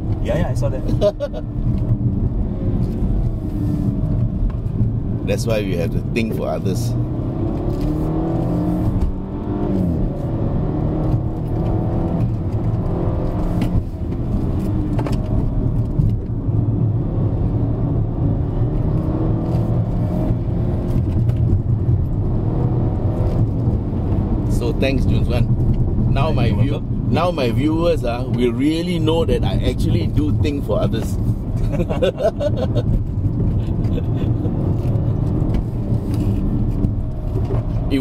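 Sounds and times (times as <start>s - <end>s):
car engine under hard acceleration: 0.0s - 38.0s.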